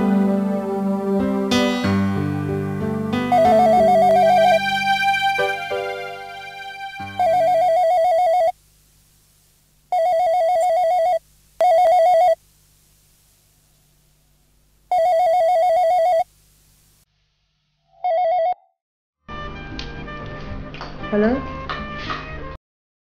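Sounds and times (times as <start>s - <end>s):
telephone ringing with warbling trill: 3.3s - 4.8s, 7.1s - 8.6s, 9.9s - 12.4s, 14.9s - 16.2s, 18.0s - 18.7s.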